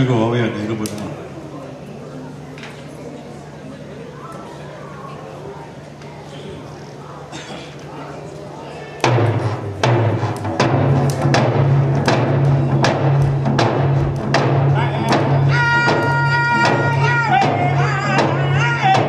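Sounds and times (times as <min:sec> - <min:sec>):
hand drums beating: 0:09.0 - 0:19.0.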